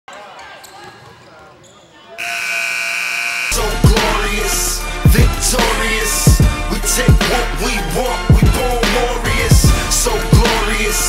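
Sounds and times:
buzzer horn tone: 0:02.2 - 0:03.9
loud music with bass hit: 0:03.5 - 0:11.0.

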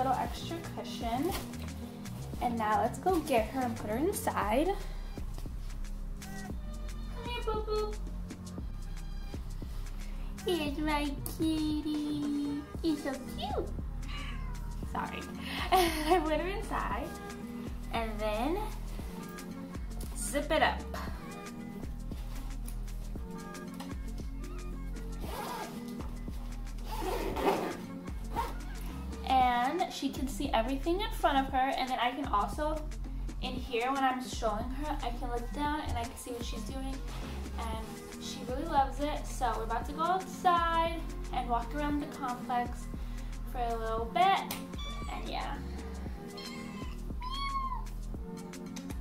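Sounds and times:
background music: 0:00.0 - 0:49.0
cat meowing: 0:14.0 - 0:14.8, 0:44.7 - 0:45.3, 0:46.3 - 0:48.0
zipper rasping closed: 0:25.1 - 0:29.0.

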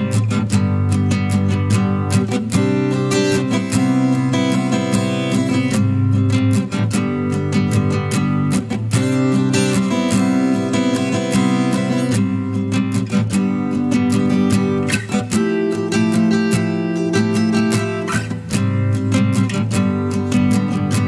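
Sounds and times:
strummed acoustic guitar: 0:00.0 - 0:21.0.

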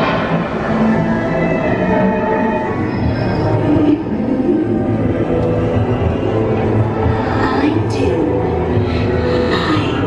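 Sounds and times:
eerie music of held tones: 0:00.0 - 0:10.0.

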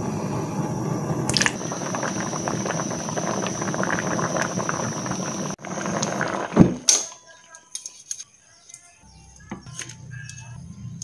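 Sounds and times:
water boiling in a wok: 0:00.0 - 0:07.1.

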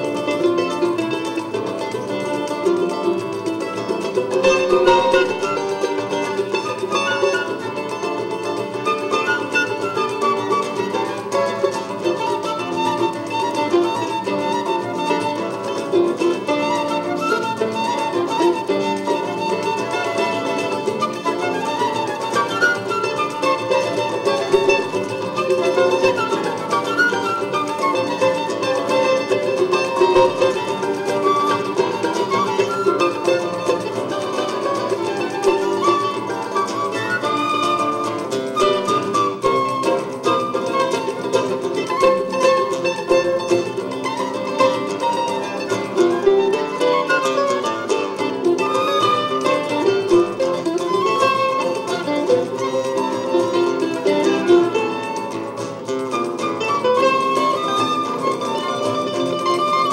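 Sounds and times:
acoustic guitar: 0:00.0 - 0:59.9
flute melody: 0:00.0 - 0:59.9
pandeiro rhythm: 0:00.0 - 0:59.9
small plucked-string instrument: 0:00.0 - 0:59.9.

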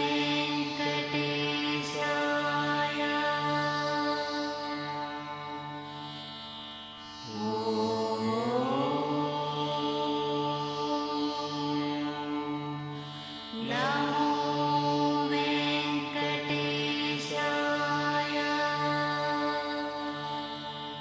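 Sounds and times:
devotional chanting: 0:00.0 - 0:21.0
steady drone: 0:00.0 - 0:21.0.

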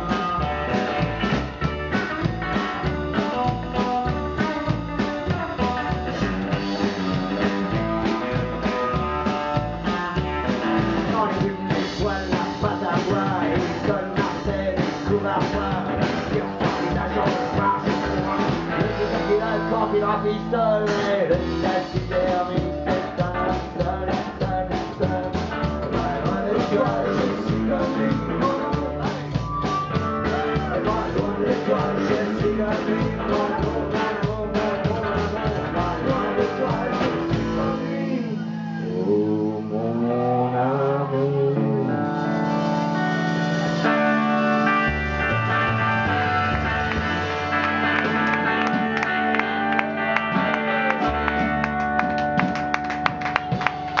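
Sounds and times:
drum kit beat: 0:00.0 - 0:38.8, 0:42.3 - 0:54.0
ringing guitar and bass notes: 0:00.0 - 0:54.0
rock and roll band playing: 0:00.0 - 0:54.0
held electric guitar notes: 0:34.0 - 0:54.0.

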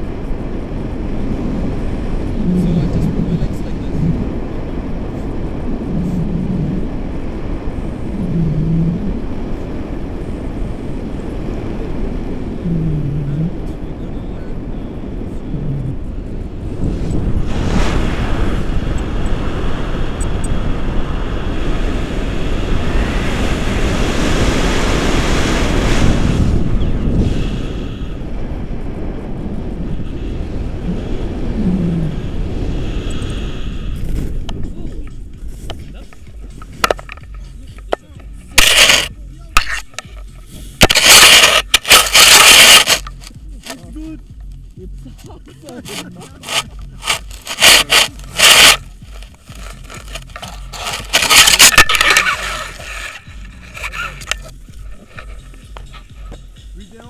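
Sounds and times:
wind rushing over microphone: 0:00.0 - 0:57.0
fabric scraping microphone: 0:01.4 - 0:07.0, 0:07.9 - 0:09.4, 0:15.4 - 0:19.8, 0:35.4 - 0:43.8, 0:45.8 - 0:57.0.

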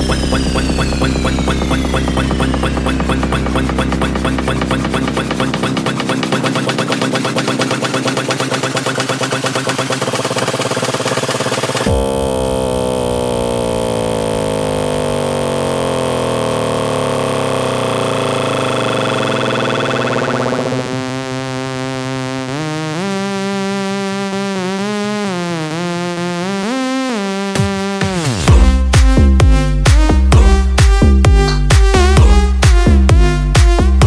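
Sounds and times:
sweeping synth tones: 0:00.0 - 0:21.8
house music beat with bass: 0:00.0 - 0:34.0.

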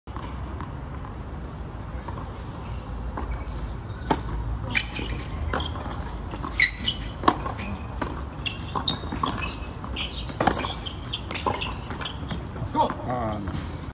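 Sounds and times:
tennis ball hits and bounces: 0:03.1 - 0:13.2.

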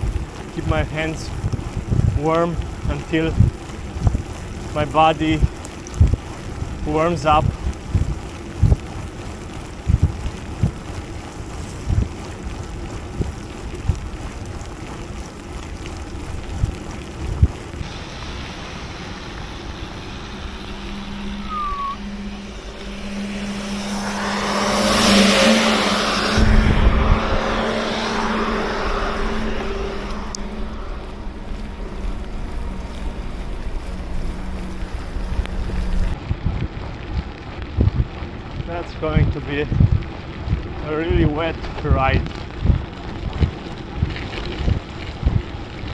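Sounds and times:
tyre noise on wet road: 0:00.0 - 0:45.9
wind buffeting microphone: 0:00.0 - 0:45.9
heavy truck engine passing: 0:18.0 - 0:36.2.

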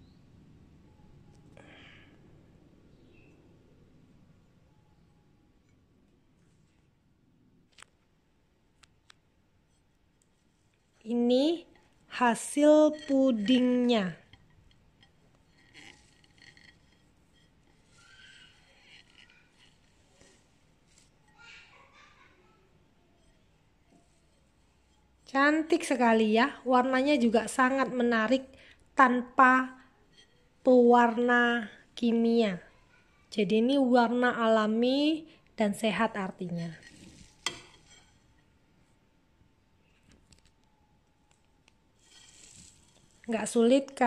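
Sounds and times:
faint steady hiss: 0:00.0 - 0:44.0.

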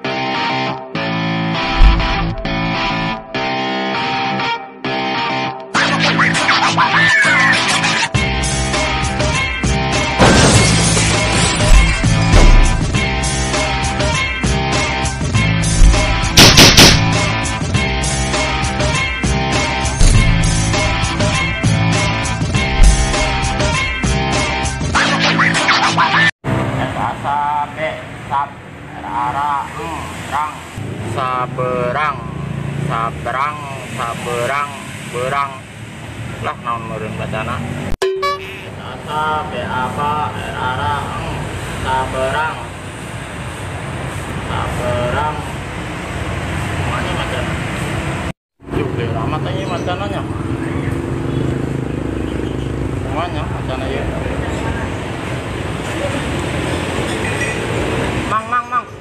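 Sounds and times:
road traffic rumble: 0:01.6 - 0:04.3, 0:08.1 - 0:25.0, 0:26.4 - 0:59.0
man calling out syllables: 0:05.7 - 0:08.2, 0:38.2 - 0:42.7.

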